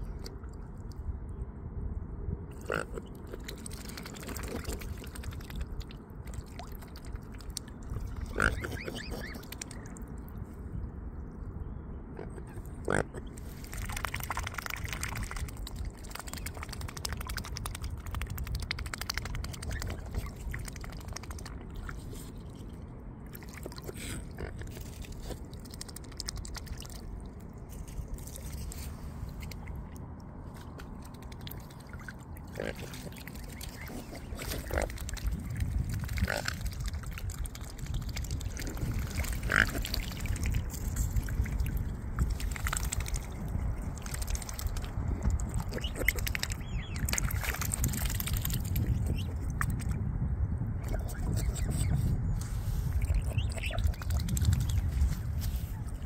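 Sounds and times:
swans dabbling in shallow water: 2.5 - 11.5, 12.2 - 50.2, 50.8 - 56.0
swan calls: 8.2 - 9.7.

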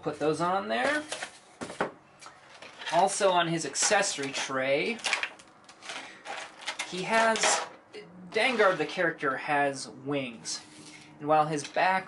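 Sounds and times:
plastic packaging clicks: 5.0 - 7.0.

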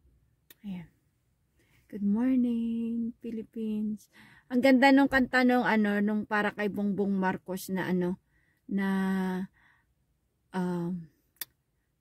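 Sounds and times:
woman speaking: 0.5 - 0.9, 1.9 - 9.5, 10.6 - 11.1.

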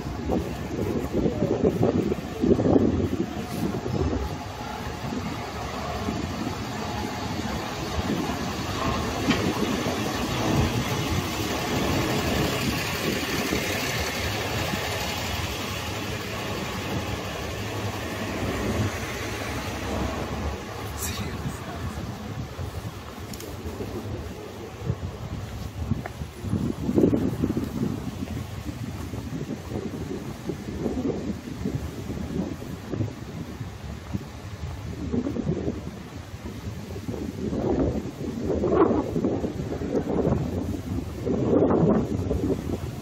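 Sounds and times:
vehicle engine running: 0.0 - 30.8
city street noise: 0.0 - 43.0
low rumbles: 0.0 - 43.0.

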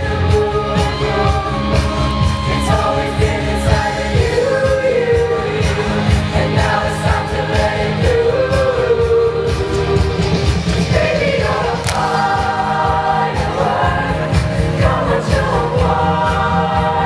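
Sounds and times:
choir singing in harmony: 0.0 - 17.0.

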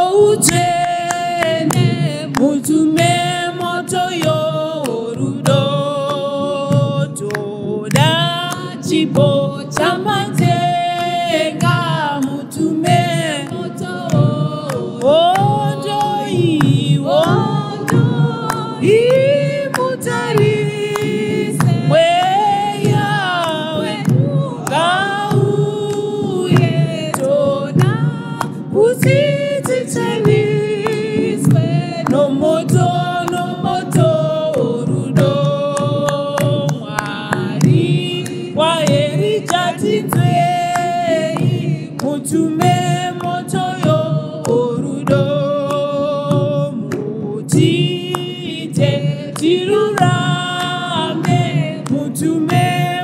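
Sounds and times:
sharp percussive strikes: 0.0 - 53.0
women singing in harmony: 0.0 - 53.0.

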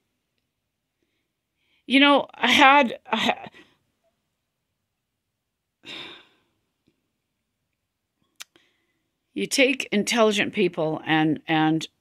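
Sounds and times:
woman sighing: 5.8 - 6.5
faint mouth click: 8.4 - 8.6.

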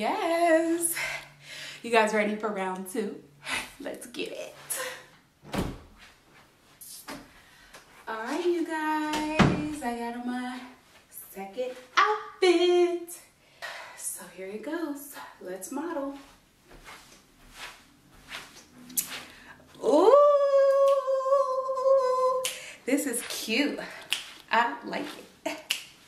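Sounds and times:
closet door thump: 5.4 - 6.0, 9.2 - 9.8
barefoot footsteps on carpet: 15.9 - 19.4, 23.0 - 25.2.

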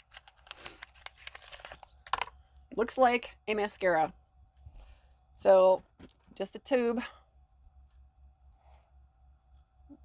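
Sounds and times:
packaging crinkling and tearing: 0.0 - 2.3.

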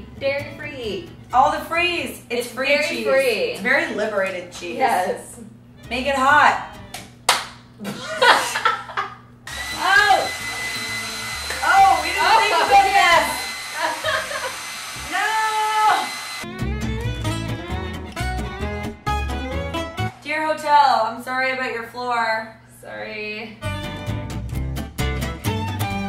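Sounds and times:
upbeat guitar music: 0.0 - 2.2, 2.8 - 7.7, 9.6 - 13.5, 16.4 - 20.2, 23.6 - 26.0
hair dryer running: 9.4 - 16.5.

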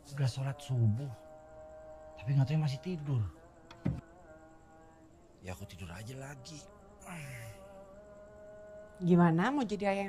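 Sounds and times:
insect-like buzzing hum: 0.0 - 10.0
short thud: 3.7 - 4.1.

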